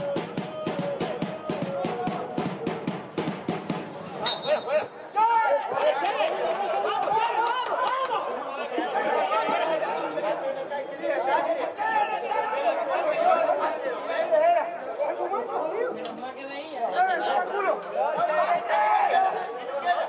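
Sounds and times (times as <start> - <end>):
spectators chattering: 0.0 - 20.0.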